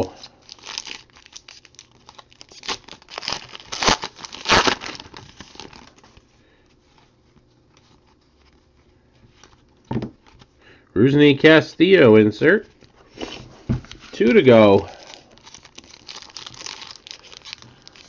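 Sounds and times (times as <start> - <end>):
foil wrapper tearing and crinkling: 0.0 - 6.0, 14.1 - 18.0.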